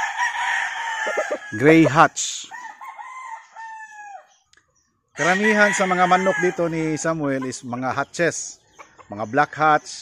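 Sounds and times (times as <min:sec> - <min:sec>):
faint rooster crowing: 0:00.0 - 0:01.9, 0:02.5 - 0:04.3, 0:05.2 - 0:07.1.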